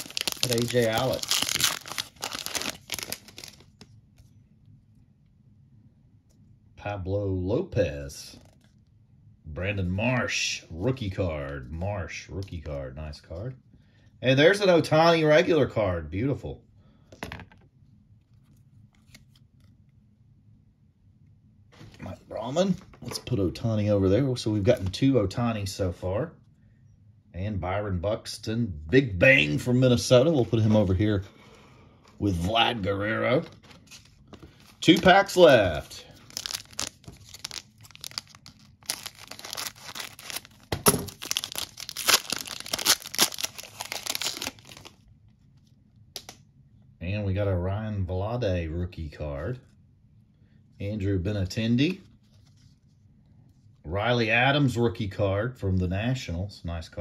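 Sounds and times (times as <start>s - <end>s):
foil wrapper ripping and crinkling: 0.0s - 3.8s, 36.1s - 45.0s
trading cards being shuffled: 0.0s - 3.9s, 33.4s - 45.0s.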